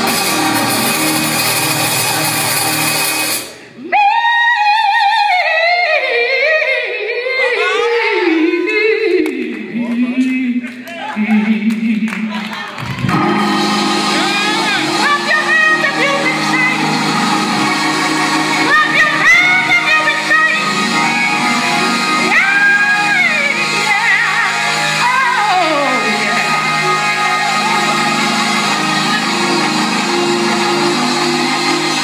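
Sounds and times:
gospel vocal: 0.0s - 32.0s
sustained keyboard chords: 13.0s - 32.0s.

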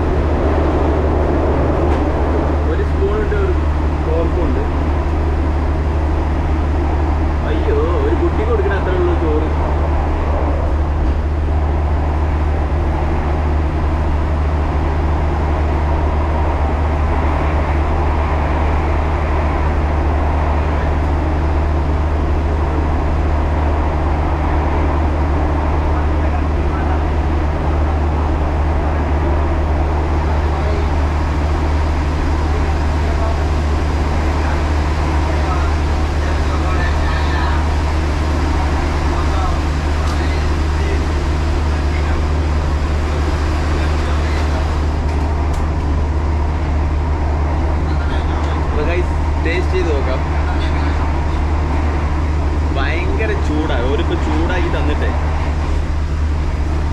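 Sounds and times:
vehicle engine drone: 0.0s - 56.9s
faint voices: 7.4s - 11.8s, 17.2s - 45.8s.

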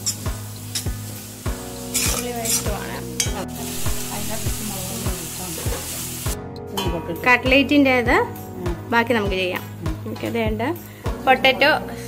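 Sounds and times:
onions sizzling: 0.0s - 6.4s
background music with steady beat: 0.0s - 12.0s
ladle scraping a pan: 1.8s - 4.0s.

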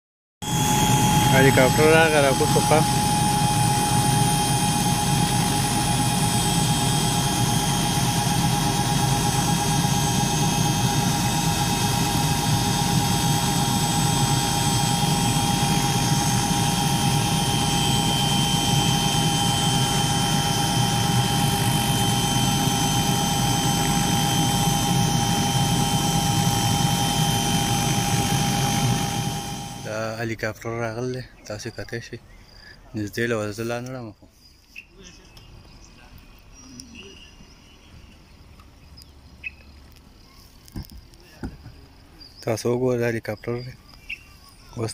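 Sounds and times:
helicopter engine and rotor drone: 0.4s - 30.2s
high whine: 0.4s - 30.2s.

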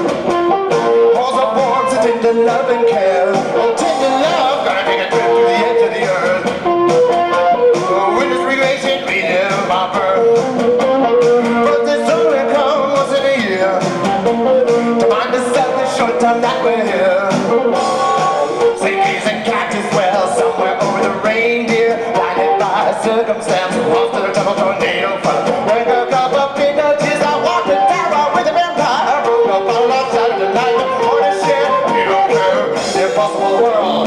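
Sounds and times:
tapped string instrument blues: 0.0s - 34.0s.

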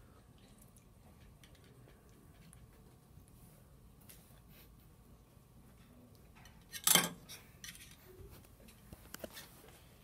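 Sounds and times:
faint handling noises: 0.4s - 10.0s.

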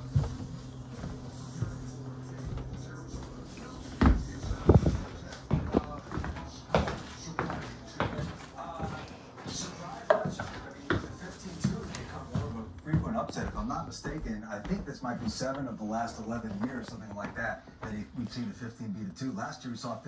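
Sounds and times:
footsteps and handling knocks: 0.0s - 18.7s
faint voices: 0.0s - 20.0s
steady low hum: 0.0s - 20.0s.

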